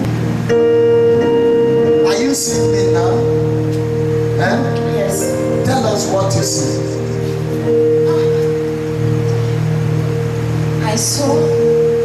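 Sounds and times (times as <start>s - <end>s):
keyboard organ-like chord: 0.0s - 12.0s.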